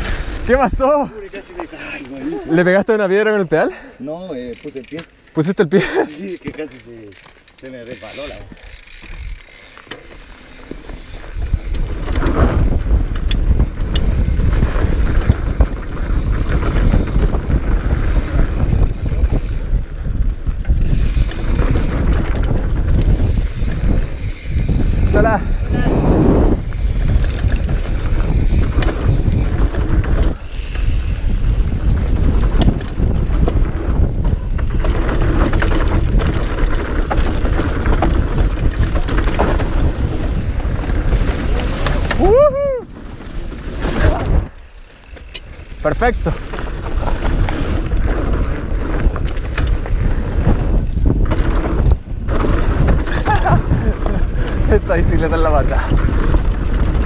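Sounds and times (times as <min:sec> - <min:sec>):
bike tyres rumbling on dirt: 0:00.0 - 0:57.0
wind buffeting microphone: 0:10.8 - 0:57.0.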